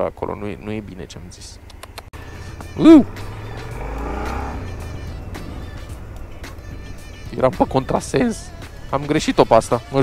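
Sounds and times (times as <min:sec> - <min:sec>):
motorcycle engine running: 0:01.6 - 0:09.3
car passing by: 0:02.2 - 0:07.3.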